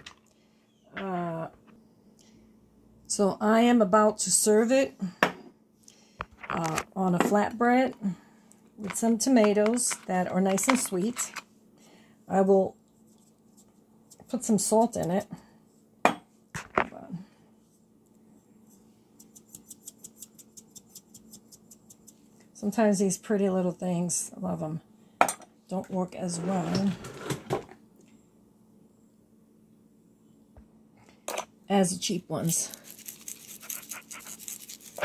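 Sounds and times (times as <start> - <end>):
salt shaker rattling: 32.8 - 35.0.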